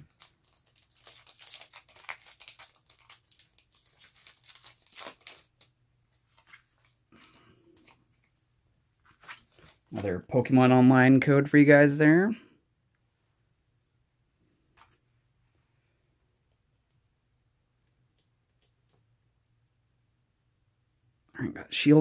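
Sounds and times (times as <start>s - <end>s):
foil wrapper tearing and crinkling: 0.0s - 5.7s
cards being handled: 0.1s - 8.4s, 9.0s - 10.1s.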